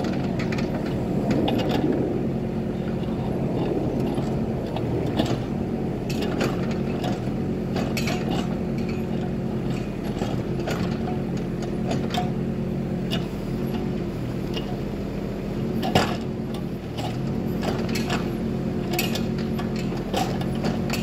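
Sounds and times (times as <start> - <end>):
diesel engine running under load: 0.0 - 21.0
clicks and clanks from bucket: 15.8 - 21.0.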